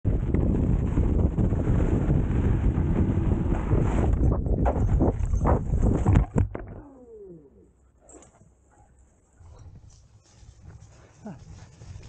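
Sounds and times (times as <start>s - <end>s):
wind buffeting microphone: 0.0s - 6.8s.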